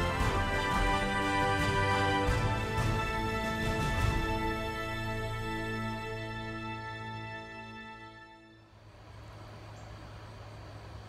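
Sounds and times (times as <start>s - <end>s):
constant low hum: 0.0s - 11.0s
steady background hiss: 0.0s - 11.0s
faint high insect drone: 4.4s - 11.0s.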